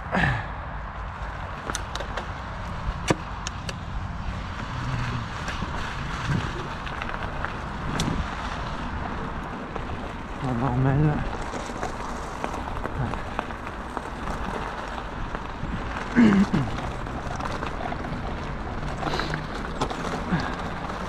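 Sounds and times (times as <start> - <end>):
rumbling hiss on gravel track: 3.6 - 21.0.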